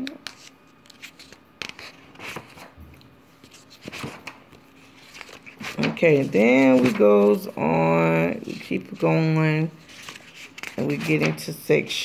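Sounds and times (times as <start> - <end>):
paper pages rustling: 0.2 - 2.8, 3.4 - 11.6
paper crackle: 3.4 - 9.1, 9.8 - 11.5.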